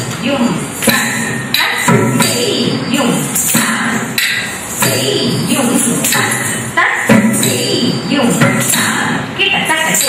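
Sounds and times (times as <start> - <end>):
sharp percussive strikes: 0.0 - 10.0
rhythmic vocal syllables chanted: 4.8 - 9.2.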